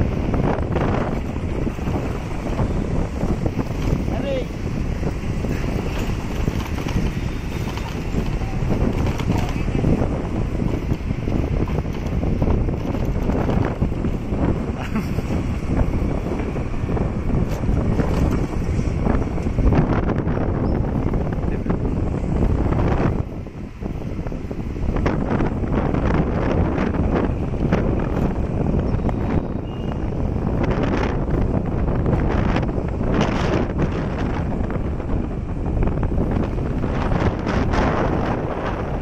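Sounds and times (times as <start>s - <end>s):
road noise: 0.0s - 39.0s
wind buffeting microphone: 0.0s - 39.0s.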